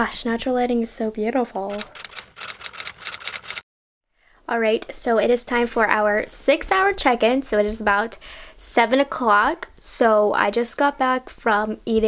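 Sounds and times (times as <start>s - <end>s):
typewriter key clicks: 1.7s - 3.6s.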